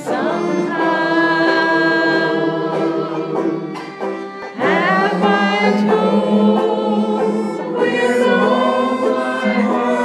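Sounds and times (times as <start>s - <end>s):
several voices singing slow song: 0.0s - 10.0s.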